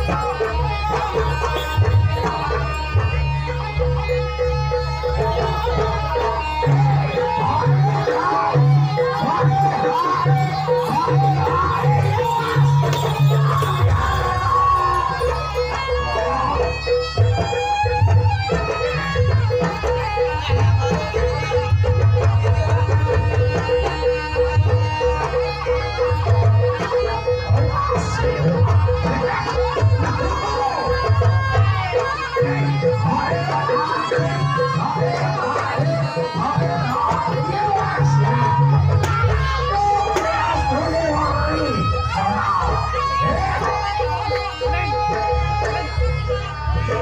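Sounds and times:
shrill reed melody: 0.0s - 47.0s.

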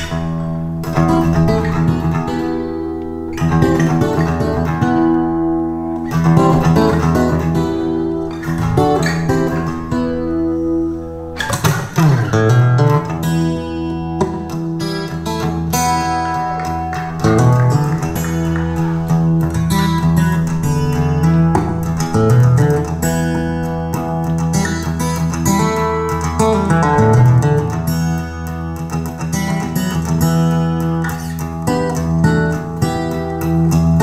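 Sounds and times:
guitar-led music: 0.0s - 34.0s.

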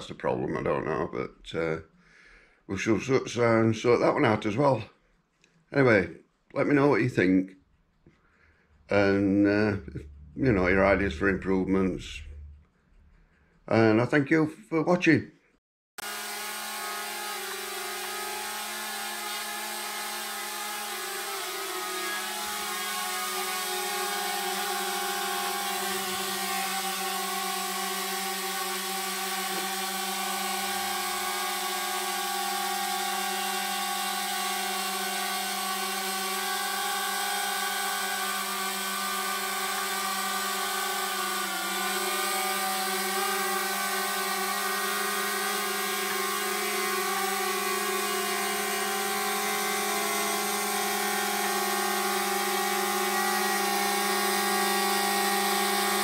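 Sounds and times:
drone propellers buzzing: 16.0s - 56.0s.

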